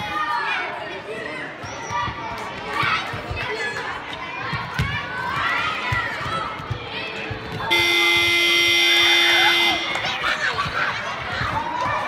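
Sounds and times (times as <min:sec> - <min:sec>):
loud sports hall buzzer: 0:07.7 - 0:10.2.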